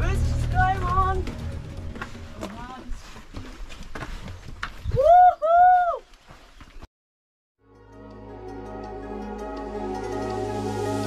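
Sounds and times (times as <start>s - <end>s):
footsteps on rocky trail: 0.0s - 5.1s, 6.0s - 6.9s.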